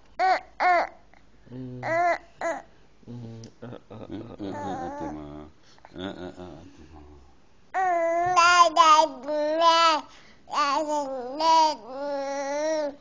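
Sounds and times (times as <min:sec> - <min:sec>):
baby babbling: 0:00.2 - 0:01.0, 0:01.8 - 0:02.7, 0:04.4 - 0:05.2, 0:07.8 - 0:13.0
man talking softly: 0:03.1 - 0:07.4.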